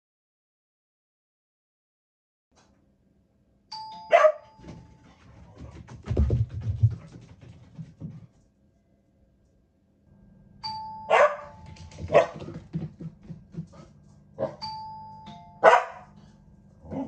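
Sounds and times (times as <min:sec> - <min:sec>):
electronic doorbell chime: 0:03.7 - 0:05.0, 0:10.6 - 0:11.9, 0:14.6 - 0:15.8
dog barking: 0:04.1 - 0:04.5, 0:11.1 - 0:12.4, 0:14.4 - 0:14.6, 0:15.6 - 0:16.2.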